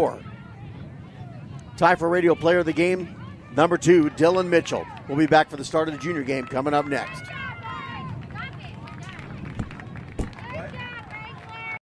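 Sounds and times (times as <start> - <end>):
background voices chatter: 0.0 - 11.6.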